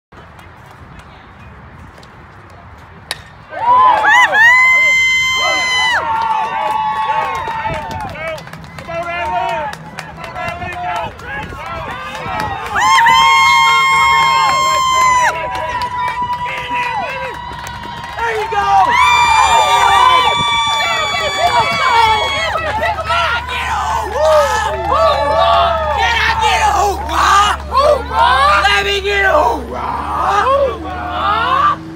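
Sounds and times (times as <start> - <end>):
bat cracking against ball: 3.0 - 3.5
crowd yelling and cheering: 3.1 - 31.9.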